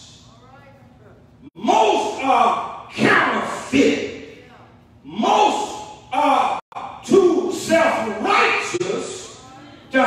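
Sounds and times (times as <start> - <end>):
man preaching into a microphone: 1.6 - 4.3, 5.0 - 10.0.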